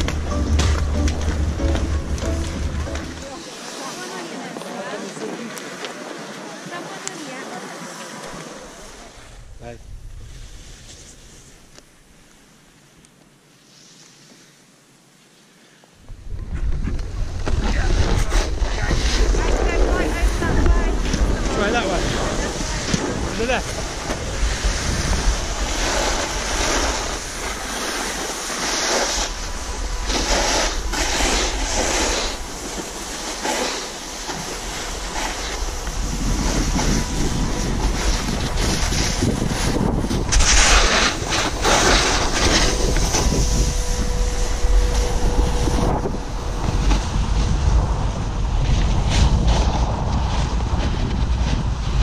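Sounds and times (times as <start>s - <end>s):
people's voices: 0.0s - 9.9s, 17.0s - 23.9s
snowboard sliding over snow: 0.0s - 52.0s
wind buffeting microphone: 9.1s - 11.8s, 16.0s - 52.0s.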